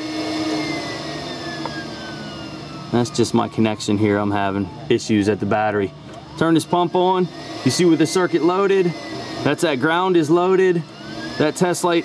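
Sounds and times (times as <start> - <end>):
air pump whirring: 0.0 - 12.0.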